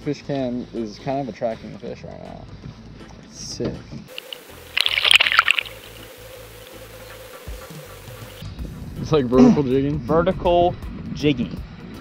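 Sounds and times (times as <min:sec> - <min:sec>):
fish splashing into water: 0:04.1 - 0:07.0.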